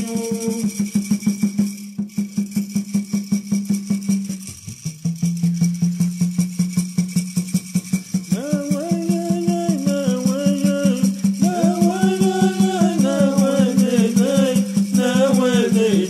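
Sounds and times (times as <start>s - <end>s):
man singing: 0.0s - 0.8s, 8.3s - 16.0s
gourd rattle shaking: 0.0s - 16.0s.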